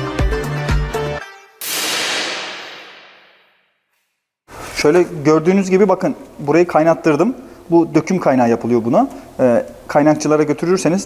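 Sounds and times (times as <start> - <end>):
transition whoosh: 1.6 - 3.6.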